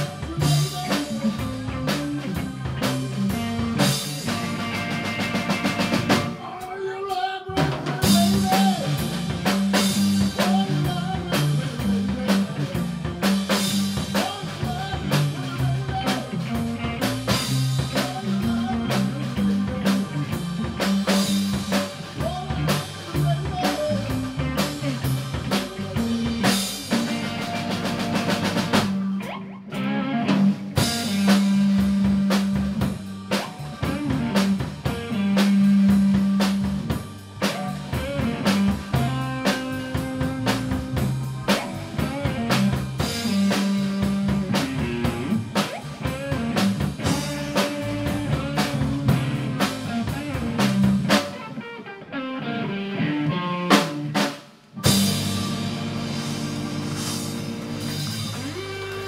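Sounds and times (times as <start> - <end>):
live band playing: 0.0 - 59.0.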